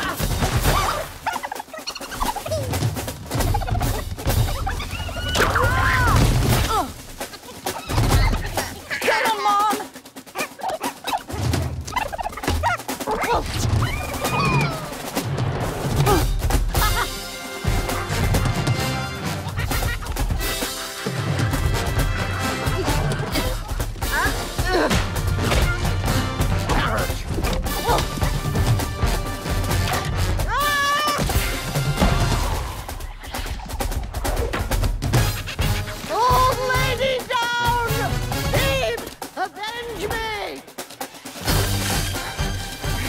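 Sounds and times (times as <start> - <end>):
animated creatures squawking: 0.0 - 6.3, 7.3 - 15.1
film score music: 0.0 - 43.0.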